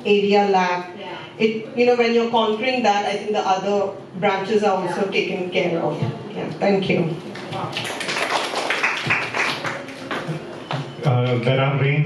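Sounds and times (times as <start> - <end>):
group clapping: 7.3 - 11.6.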